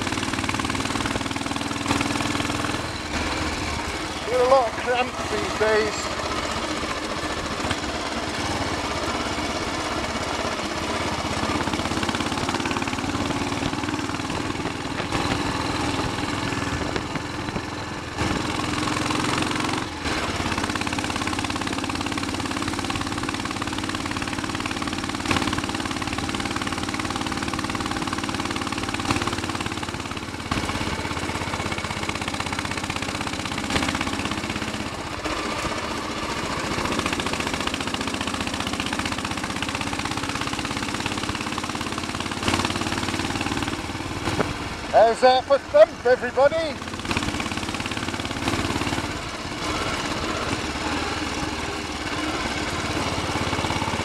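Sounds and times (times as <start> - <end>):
motorcycle engine thumping: 0.0 - 46.2, 46.8 - 54.0.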